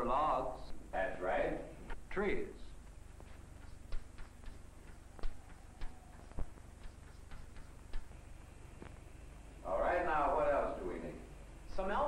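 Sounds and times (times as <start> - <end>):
chalk clicking on blackboard: 3.2 - 8.2.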